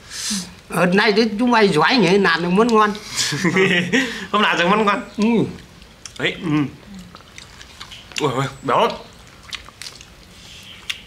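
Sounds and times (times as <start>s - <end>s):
crunching fried chicken: 5.1s - 11.0s.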